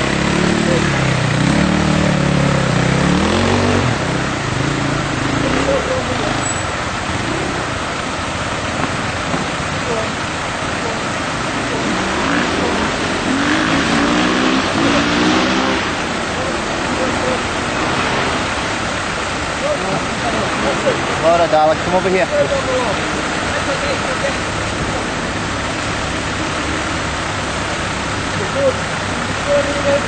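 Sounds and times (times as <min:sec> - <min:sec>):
vehicle engine running: 0:00.0 - 0:30.0
water rushing around wheels: 0:00.0 - 0:30.0.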